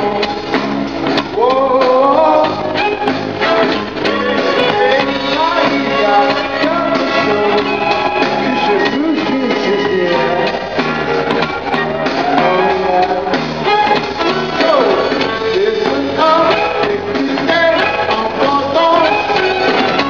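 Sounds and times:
man singing: 0.0s - 0.6s, 1.2s - 10.9s, 12.0s - 20.0s
live pop-rock music: 0.0s - 20.0s.

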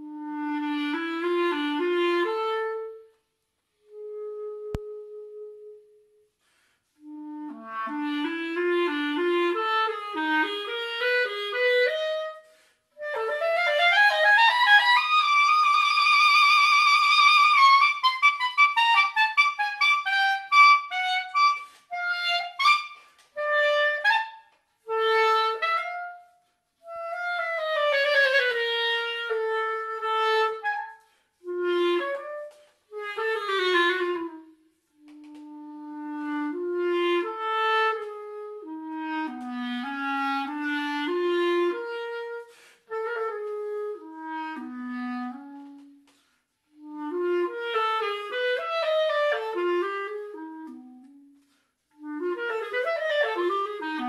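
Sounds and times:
solo clarinet: 0.0s - 54.0s.

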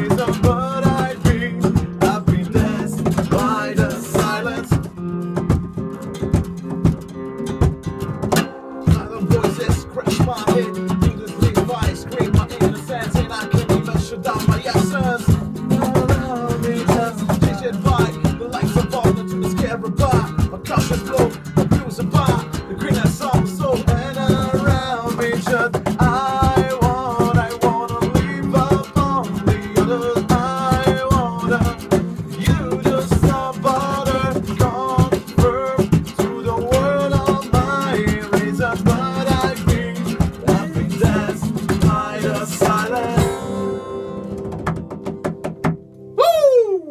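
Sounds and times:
strummed acoustic guitar: 0.0s - 46.2s.

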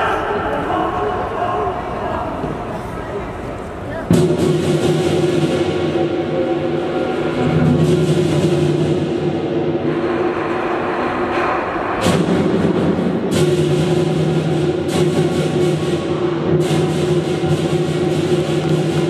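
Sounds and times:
big drum beating: 4.0s - 19.0s.

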